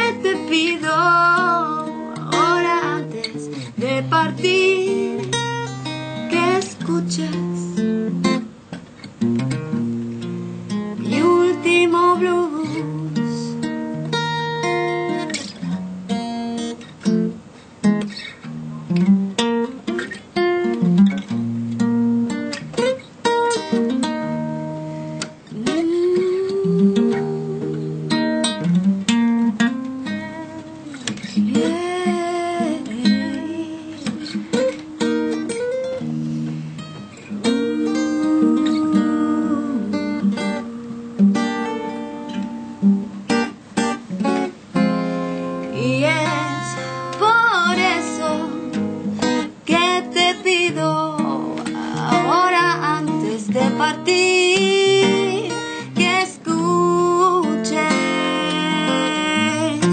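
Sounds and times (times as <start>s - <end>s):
woman singing: 0.0s - 8.0s, 11.0s - 13.7s, 25.2s - 28.8s, 29.5s - 36.1s, 37.3s - 41.8s, 45.6s - 59.9s
acoustic guitar playing blues: 0.0s - 59.9s.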